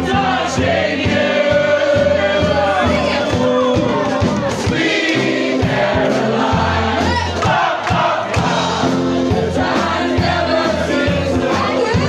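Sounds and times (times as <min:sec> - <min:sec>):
drum kit beat: 0:00.0 - 0:12.0
voices singing together: 0:00.0 - 0:12.0.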